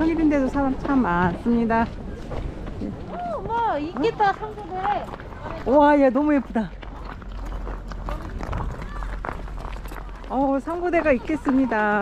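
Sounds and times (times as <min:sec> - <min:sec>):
footsteps on packed snow: 0:00.0 - 0:12.0
low rumble on microphone: 0:06.7 - 0:10.6.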